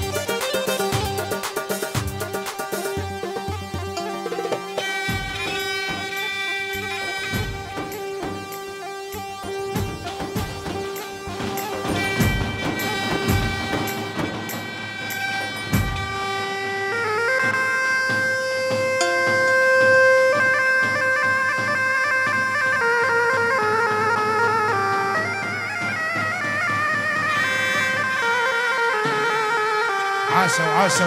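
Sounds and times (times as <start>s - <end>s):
reedy wind instrument melody: 0.0s - 31.0s.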